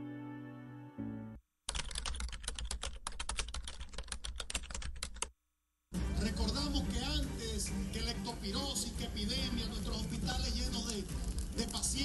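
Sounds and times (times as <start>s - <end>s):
keyboard typing clicks: 1.7s - 5.3s.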